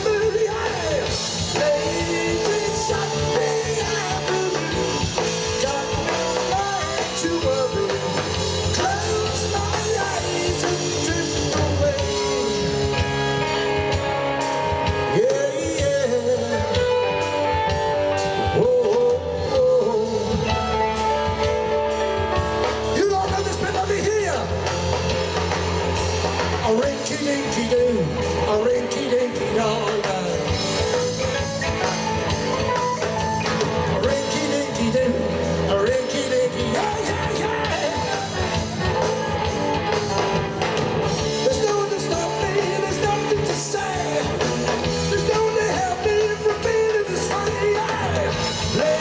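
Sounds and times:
male lead vocal: 0.0 - 21.9, 22.6 - 25.1, 26.4 - 49.0
bass guitar: 0.0 - 49.0
drum kit: 0.0 - 49.0
electric guitar: 0.0 - 49.0
rock band playing: 0.0 - 49.0.

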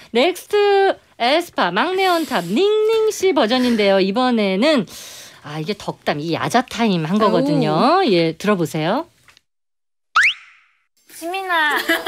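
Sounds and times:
cartoon bloop sound effect: 10.2 - 10.8.

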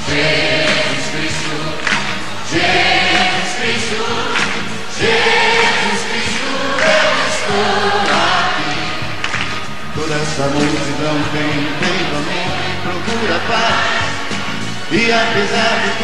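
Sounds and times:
choir singing held phrases: 0.0 - 16.0
live band music: 0.0 - 16.0.

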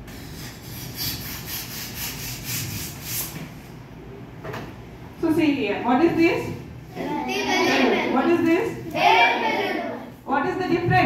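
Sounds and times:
hand pump puffing air: 0.0 - 3.4.

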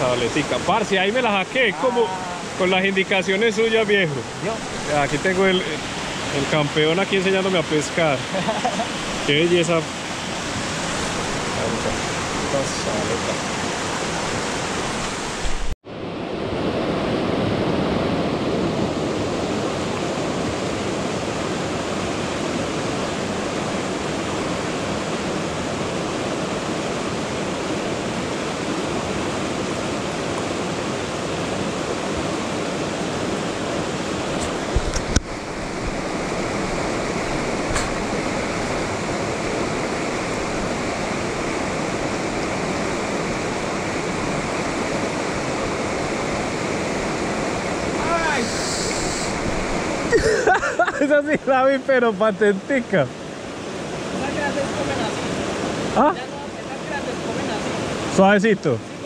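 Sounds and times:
river rapids rushing over rocks: 0.0 - 15.7, 19.2 - 50.3, 52.3 - 59.0.

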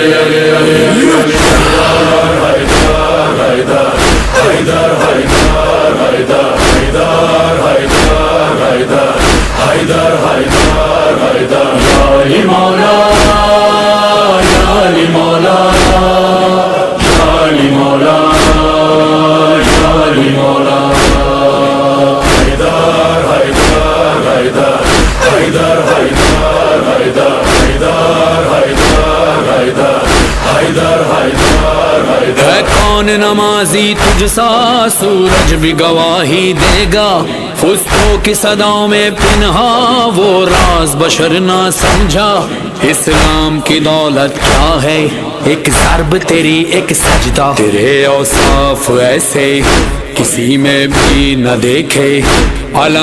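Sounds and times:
steady drum beat: 1.3 - 3.3, 24.8 - 26.8, 30.1 - 33.2, 34.0 - 34.5, 36.6 - 37.2.

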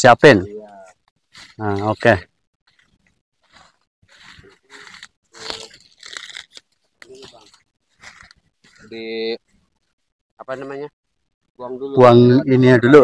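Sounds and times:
dry twigs crunching and snapping: 2.7 - 8.9.

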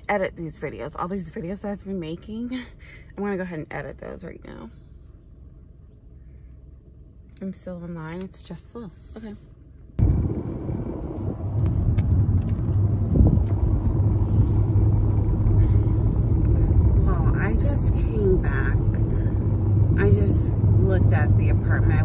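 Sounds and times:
car cabin road rumble: 0.0 - 22.0.

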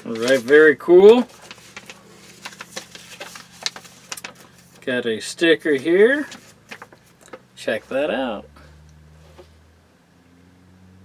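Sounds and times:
paper rustling and crinkling: 0.0 - 4.9, 5.6 - 7.4.

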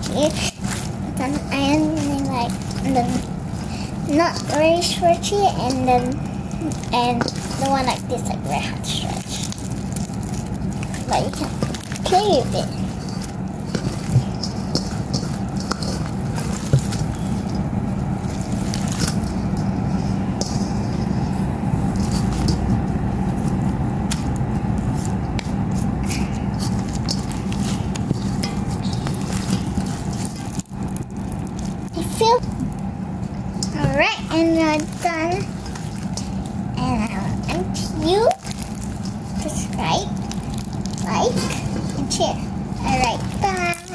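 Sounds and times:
slime squishing and crackling: 0.0 - 43.9
steady low hum: 0.0 - 43.9.

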